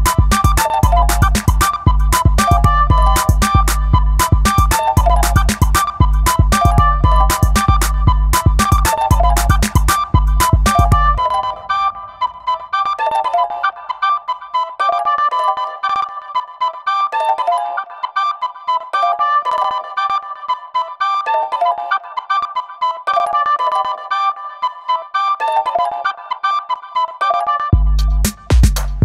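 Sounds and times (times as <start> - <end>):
heavy low beat: 0.0 - 11.2, 27.8 - 29.0
bright background music melody: 0.0 - 28.6.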